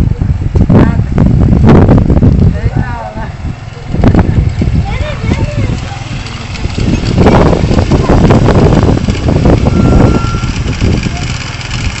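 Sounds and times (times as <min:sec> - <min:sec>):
scooter engine idling: 0:01.5 - 0:12.0.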